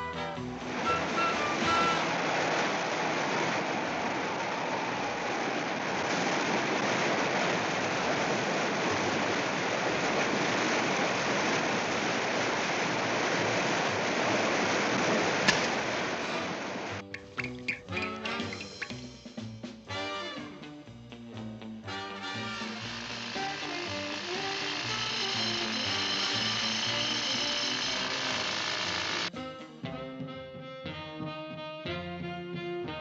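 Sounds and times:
ocean surf rushing: 0.7s - 17.0s.

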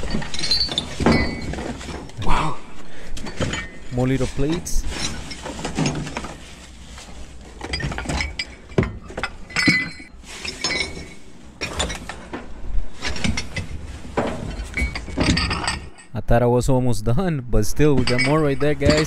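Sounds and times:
ceramic dishes clinking: 18.0s - 19.0s.

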